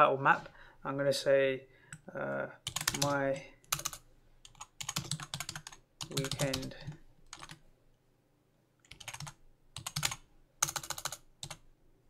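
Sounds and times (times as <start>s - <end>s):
computer keyboard typing: 2.6s - 7.6s, 8.8s - 11.6s.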